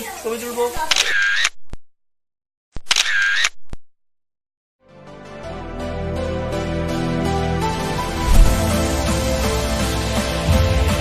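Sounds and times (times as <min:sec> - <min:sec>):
camera shutter click: 0:00.8 - 0:01.6, 0:02.8 - 0:03.6.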